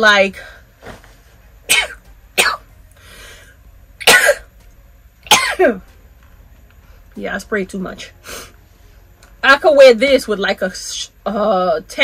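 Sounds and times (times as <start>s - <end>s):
woman coughing: 1.7s - 2.7s, 4.0s - 4.5s, 5.3s - 5.8s.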